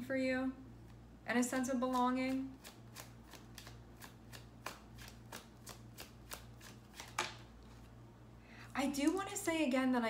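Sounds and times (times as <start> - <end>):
cards being shuffled: 1.6 - 7.9.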